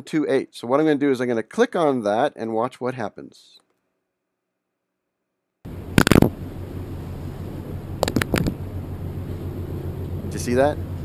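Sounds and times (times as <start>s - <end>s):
outdoor noise with low hum: 5.7s - 11.0s
bird pecking on camera: 8.0s - 8.6s.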